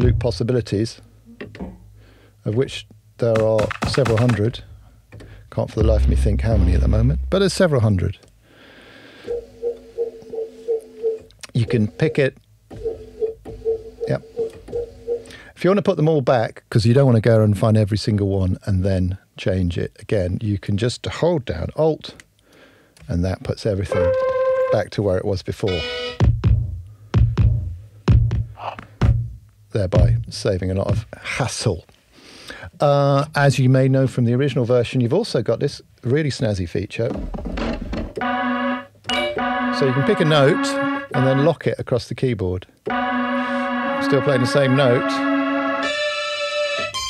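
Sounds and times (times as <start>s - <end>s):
held organ-like tone: 5.6s - 8.2s, 23.8s - 24.9s, 25.6s - 26.3s, 38.2s - 41.6s, 42.9s - 47.0s
low thud: 5.8s - 7.8s
gritty noisy loop with rumble: 5.8s - 7.9s
pulsing pitched note: 5.8s - 8.0s, 42.9s - 47.0s.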